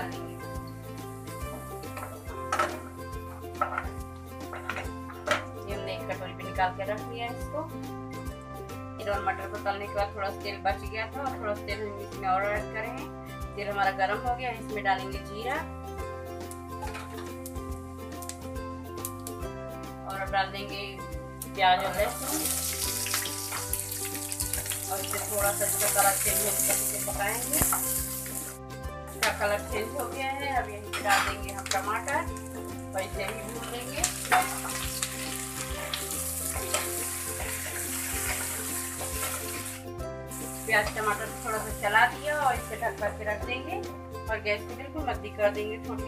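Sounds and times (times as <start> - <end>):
onions sizzling in hot oil: 0.0 - 5.1, 21.4 - 43.0
background instrumental music: 0.0 - 46.0
spatula scraping a frying pan: 33.4 - 39.8.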